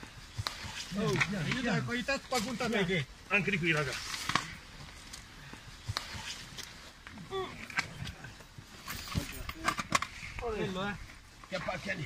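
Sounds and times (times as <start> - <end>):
rope rustling: 0.0 - 12.0.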